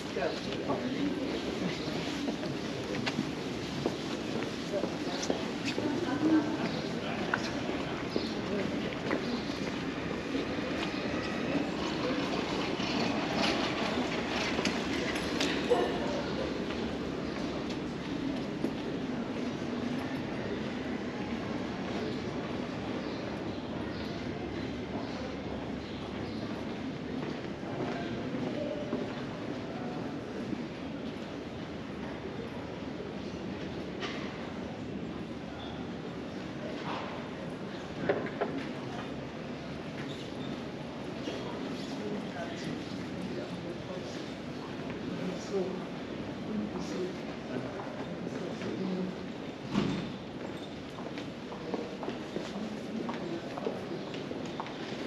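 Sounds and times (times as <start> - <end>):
passers-by talking: 0.0 - 49.8.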